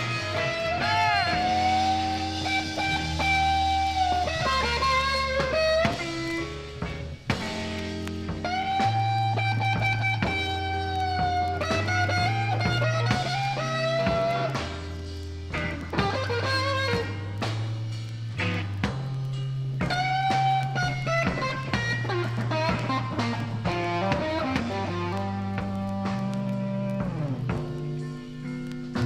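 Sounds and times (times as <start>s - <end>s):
bass notes: 0.0s - 29.0s
electric guitar blues solo: 0.0s - 29.0s.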